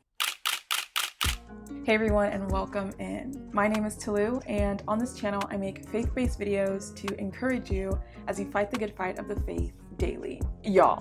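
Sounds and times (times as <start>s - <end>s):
sharp clicks: 0.1s - 1.4s.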